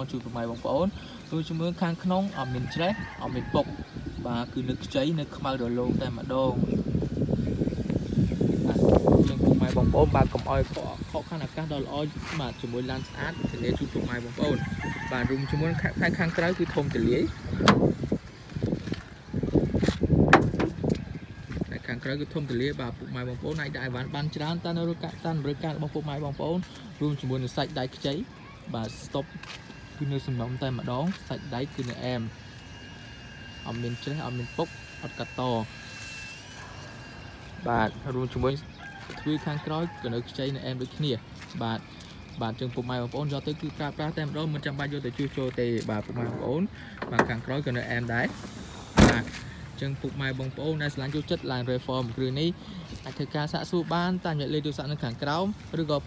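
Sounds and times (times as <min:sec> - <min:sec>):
man talking: 0:00.0 - 0:06.7, 0:08.6 - 0:17.8, 0:21.6 - 0:32.4, 0:37.6 - 0:56.0.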